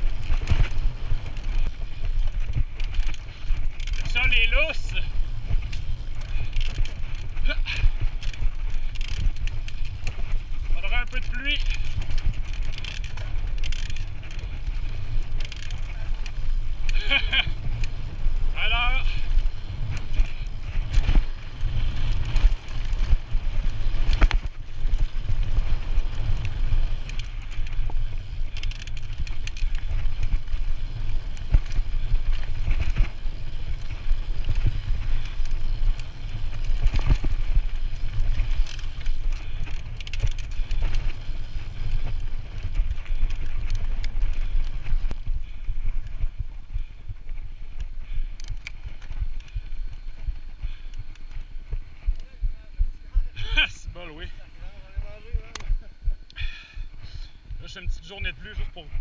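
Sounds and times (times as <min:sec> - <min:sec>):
tyres crunching on gravel: 0:00.0 - 0:45.6
bike knocking and rattling: 0:00.0 - 0:59.0
wind rumble on microphone: 0:00.0 - 0:59.0.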